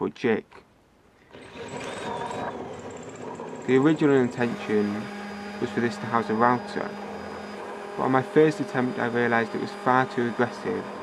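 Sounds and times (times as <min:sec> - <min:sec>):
random orbit sander running: 0:01.3 - 0:11.0.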